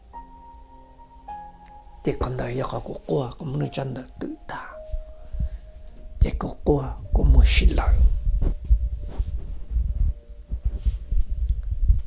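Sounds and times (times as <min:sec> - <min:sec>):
person whispering narration: 0:02.1 - 0:04.8, 0:06.2 - 0:08.1
low rumble: 0:07.0 - 0:12.0.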